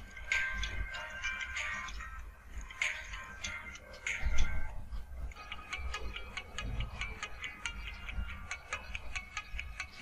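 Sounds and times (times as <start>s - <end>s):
electronic music through earbud: 0.0s - 10.0s.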